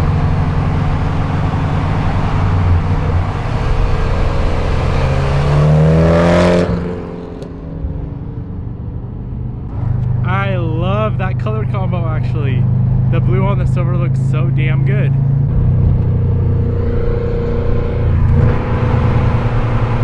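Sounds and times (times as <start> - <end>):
loud car engine accelerating: 0.0 - 20.0.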